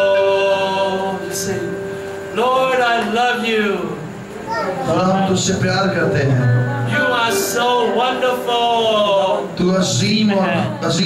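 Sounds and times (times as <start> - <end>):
man talking over microphone: 4.8 - 6.6.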